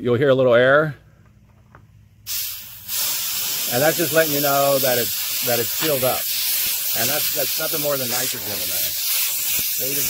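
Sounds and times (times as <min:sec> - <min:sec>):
gas hissing from pipe: 0:02.3 - 0:10.0.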